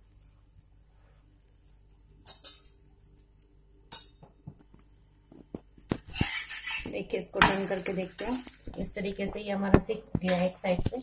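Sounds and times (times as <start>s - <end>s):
bread sizzling in hot fat: 0.0s - 9.3s.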